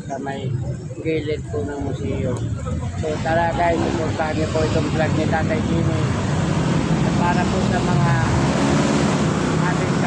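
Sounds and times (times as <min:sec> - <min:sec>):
low engine hum of traffic: 0:00.0 - 0:10.0
voices: 0:00.0 - 0:10.0.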